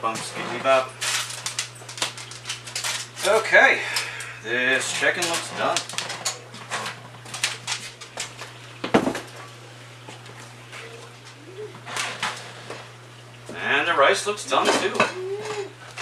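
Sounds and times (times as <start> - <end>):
pan and utensils clinking: 14.5 - 16.0.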